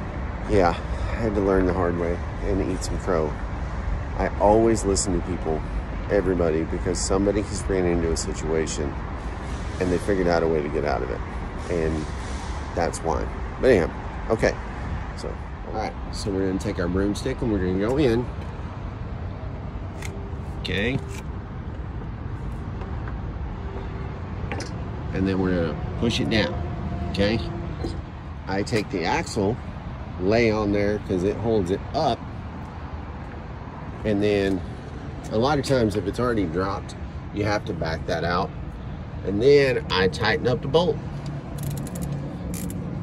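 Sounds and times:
vehicle engine rumbling: 0.0s - 43.0s
ratchet wrench clicking: 41.2s - 42.8s.

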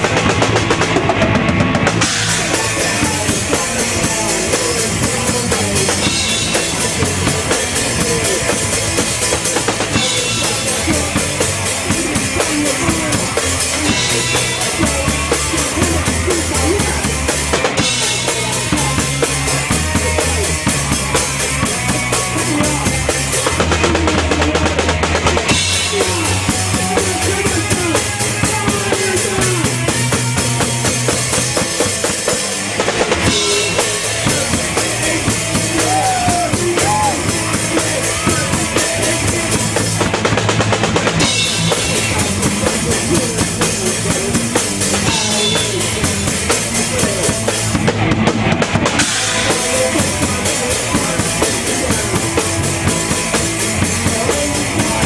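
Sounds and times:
drum kit: 0.0s - 55.0s
electric guitar: 0.0s - 55.0s
punk band playing live: 0.0s - 55.0s.

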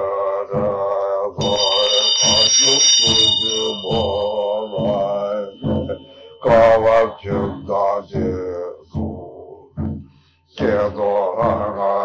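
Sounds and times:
man chanting: 0.0s - 9.8s, 10.6s - 12.0s
hand bell ringing: 1.4s - 6.8s.

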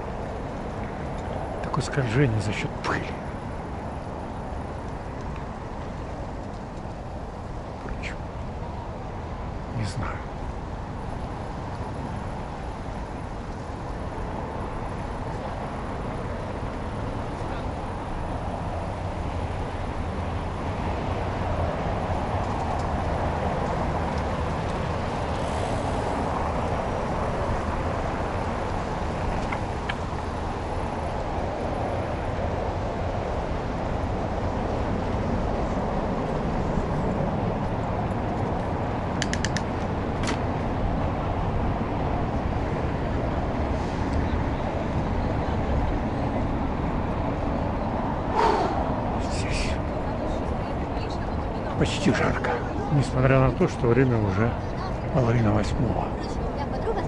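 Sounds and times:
bicycle tyres rolling: 0.0s - 2.2s, 3.4s - 9.6s, 10.3s - 49.0s
quick clicks: 39.2s - 40.4s.

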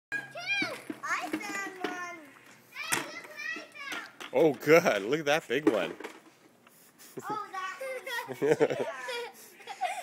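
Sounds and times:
children calling out in play: 0.1s - 4.3s, 7.2s - 10.0s.

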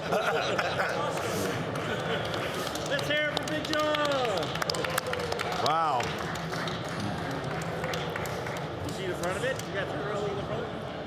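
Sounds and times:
crowd hubbub: 0.0s - 3.3s, 3.9s - 11.0s.

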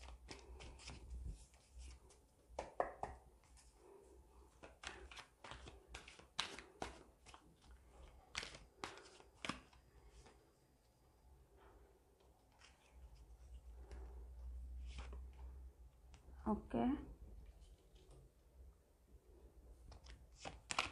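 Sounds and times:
cards being shuffled: 0.0s - 3.7s, 4.5s - 10.4s, 19.9s - 20.9s.

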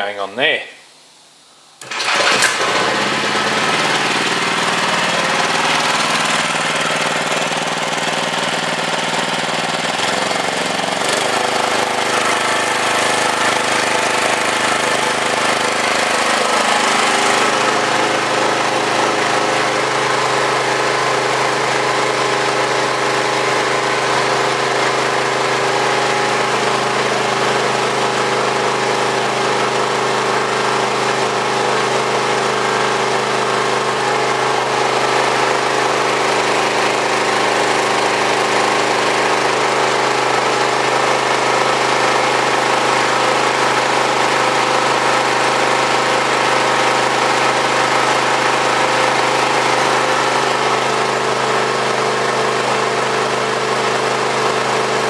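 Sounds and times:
small engine running generator: 1.8s - 55.0s.

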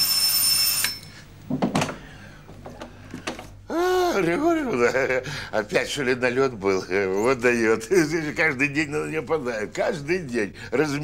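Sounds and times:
electric doorbell ringing: 0.0s - 1.2s.

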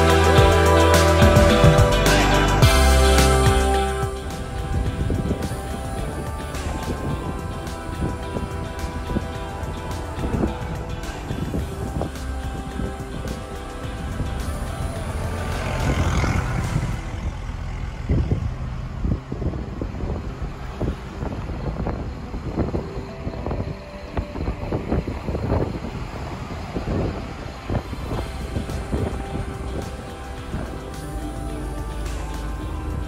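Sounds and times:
background music: 0.0s - 18.4s, 19.0s - 33.0s
truck engine and road rumble: 0.0s - 33.0s.

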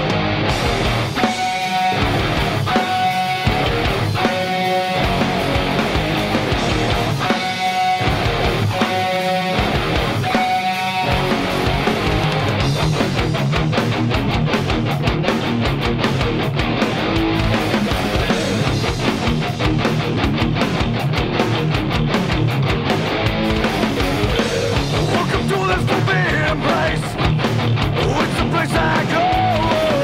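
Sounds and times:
overdriven electric guitar: 0.0s - 30.0s.

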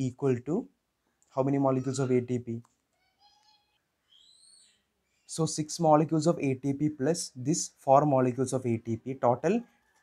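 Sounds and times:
faint bird calls: 2.9s - 5.4s.

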